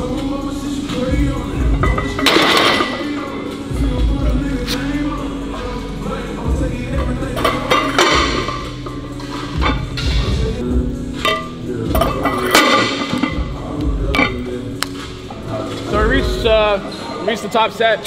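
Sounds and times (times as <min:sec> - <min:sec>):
background music with vocals: 0:00.0 - 0:18.0
weight plates clinking: 0:01.6 - 0:03.6, 0:06.9 - 0:10.4, 0:11.2 - 0:14.6.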